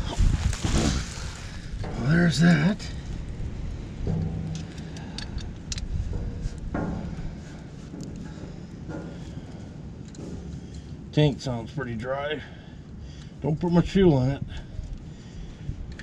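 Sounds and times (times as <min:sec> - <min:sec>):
hollow thuds on metal tank: 0:00.5 - 0:11.8
small metal clicks: 0:04.1 - 0:06.9.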